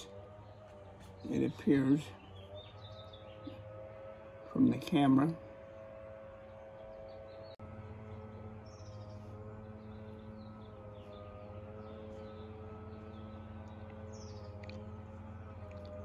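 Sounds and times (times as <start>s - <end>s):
small birds chirping: 0.0s - 16.0s
steady mechanical hum: 0.0s - 16.0s.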